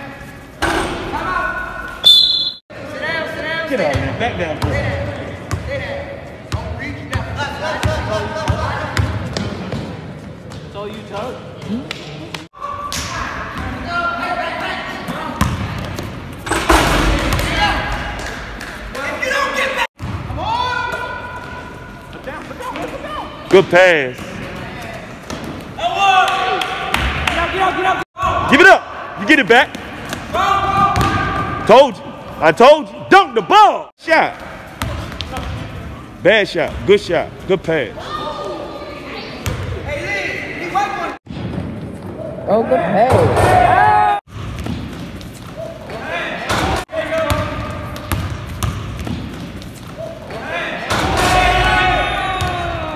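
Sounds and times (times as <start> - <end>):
voices of players and spectators: 0.0 - 52.9
sneakers squeaking on floor: 1.8 - 2.6, 44.3 - 50.9
basketball bouncing on court: 15.3 - 18.0, 20.0 - 21.6, 29.7 - 31.7, 34.7 - 35.9, 39.4 - 39.8, 44.3 - 45.7, 47.2 - 49.9, 52.3 - 52.8
basketball striking floor: 30.1 - 31.5, 44.3 - 45.2, 46.5 - 49.6.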